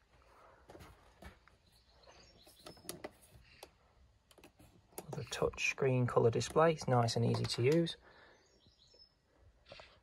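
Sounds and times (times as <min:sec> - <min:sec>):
birds chirping: 0:00.4 - 0:10.0.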